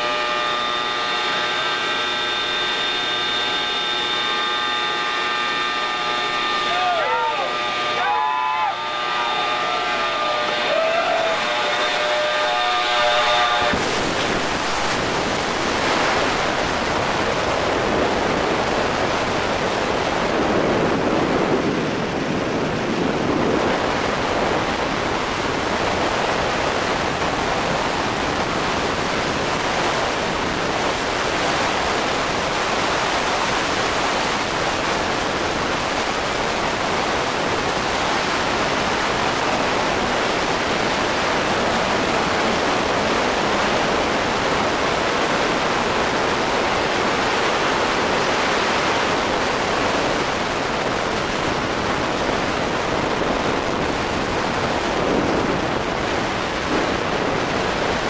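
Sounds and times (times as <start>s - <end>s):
wind roaring over microphone: 7.9s - 58.0s.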